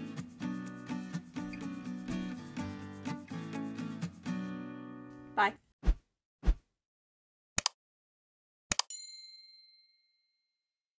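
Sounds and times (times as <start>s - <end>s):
bright bell chime: 8.9s - 10.3s.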